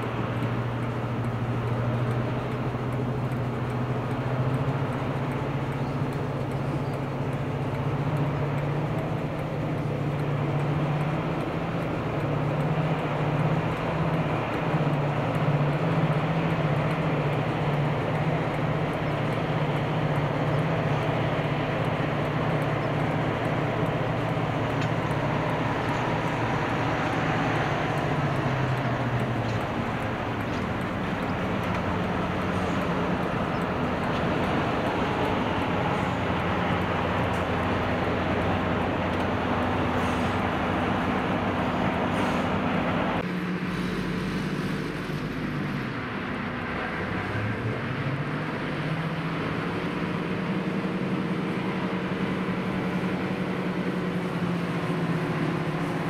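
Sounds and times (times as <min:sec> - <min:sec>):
constant rushing noise: 0:00.0 - 0:56.0
diesel locomotive engine: 0:00.0 - 0:56.0.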